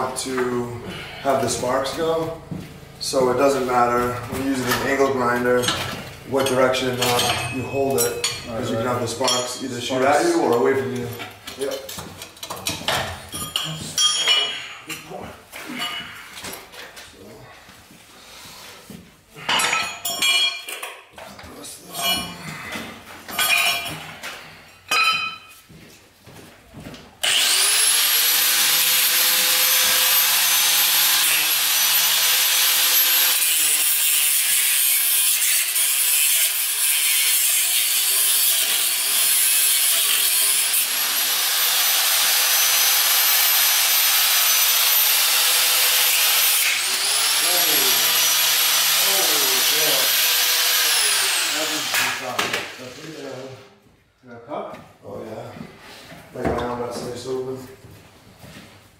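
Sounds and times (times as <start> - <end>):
angle grinder cutting steel: 0.9 - 11.1, 27.2 - 53.6.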